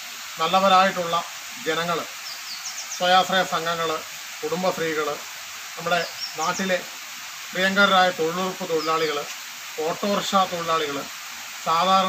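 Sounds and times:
steady background hiss: 0.0s - 12.0s
man speaking: 7.6s - 12.0s.

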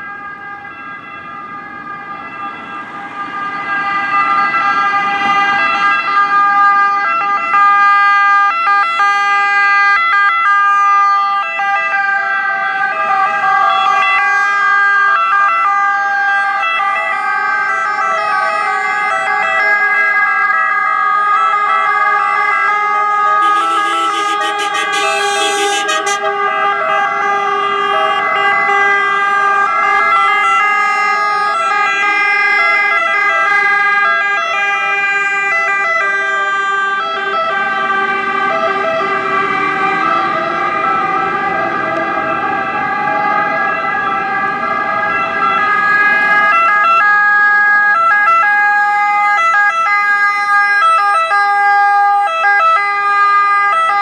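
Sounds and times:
emergency vehicle sirens wailing: 0.0s - 54.0s.

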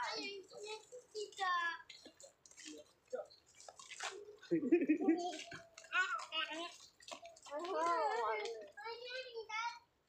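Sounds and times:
people talking: 0.0s - 3.3s, 4.2s - 9.8s.

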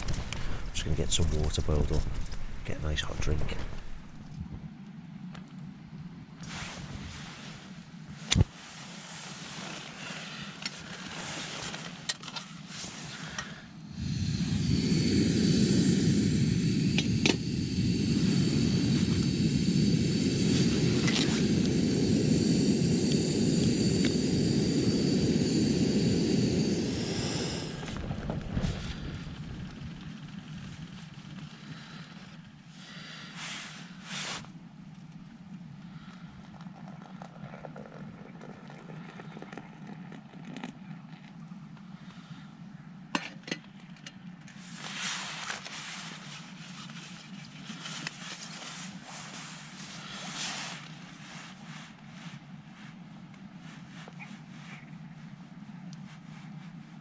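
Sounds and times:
gas stove burner hissing: 0.0s - 4.3s, 13.9s - 29.8s.

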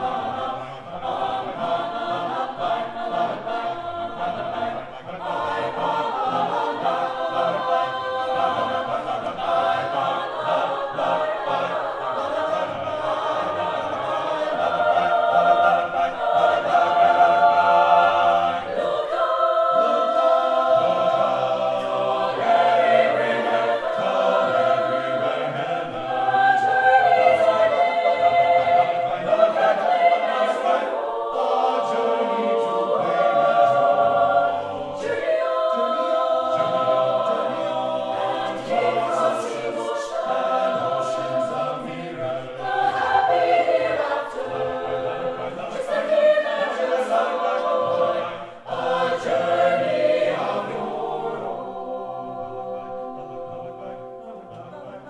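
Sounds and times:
mixed choir singing in harmony: 0.0s - 55.0s.

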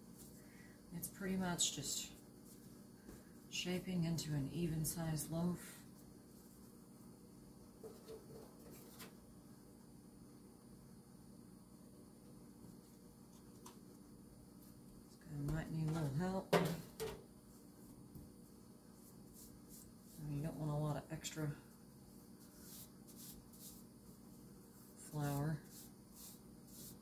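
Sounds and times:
hands shaping dough: 17.5s - 20.6s, 22.1s - 27.0s
person speaking: 25.0s - 25.7s.

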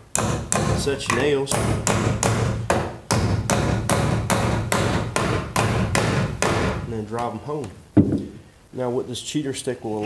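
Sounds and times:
hammer blows on nails: 0.0s - 6.9s.

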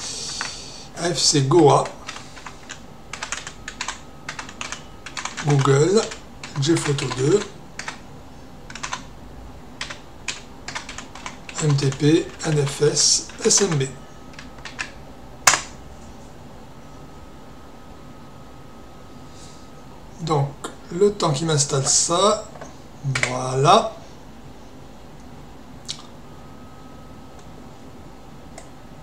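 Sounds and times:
computer keyboard typing: 0.3s - 0.6s, 1.7s - 8.0s, 8.7s - 9.1s, 9.8s - 15.7s.

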